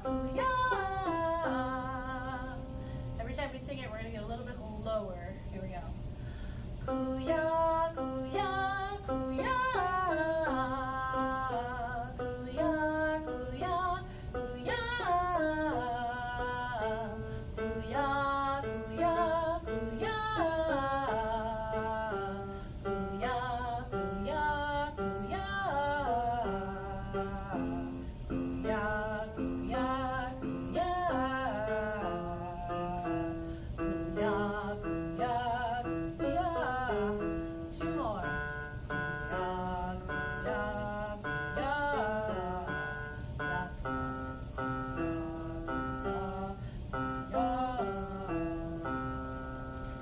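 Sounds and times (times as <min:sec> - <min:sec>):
woman singing: 0:00.0 - 0:05.3, 0:06.8 - 0:49.4
steady low hum: 0:00.0 - 0:50.0.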